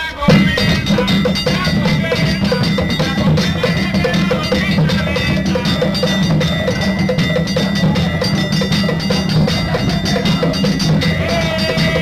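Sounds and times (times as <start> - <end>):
low drums: 0.3 - 12.0
metal pieces struck like cowbells: 0.3 - 12.0.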